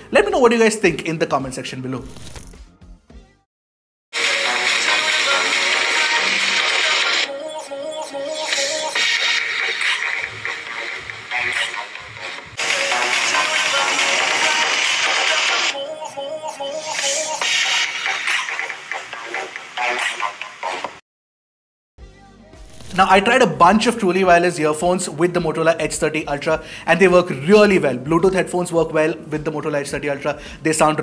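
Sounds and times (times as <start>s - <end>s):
music from phone loudspeakers: 4.2s - 21.0s.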